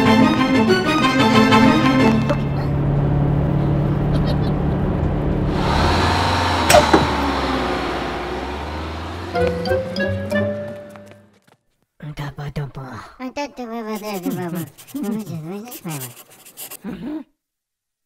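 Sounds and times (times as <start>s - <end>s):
low steady drone: 2.3s - 10.2s
hissing swell: 5.4s - 10.1s
sharp hit with falling sweep: 5.5s - 10.0s
pitched cartoon music: 9.4s - 11.2s.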